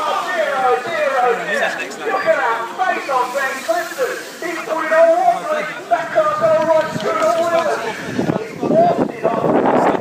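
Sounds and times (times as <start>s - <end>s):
voices talking: 0.0s - 10.0s.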